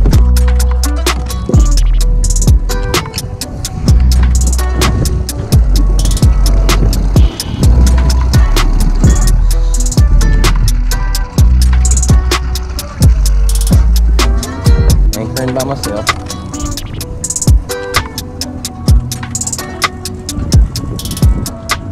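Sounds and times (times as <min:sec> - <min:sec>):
music with drum beat and bass: 0:00.0 - 0:21.9.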